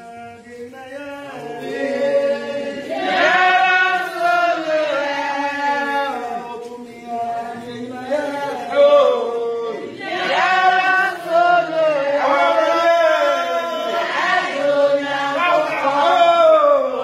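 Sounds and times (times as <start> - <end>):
group of voices chanting: 1.4 - 6.5, 7.5 - 17.0.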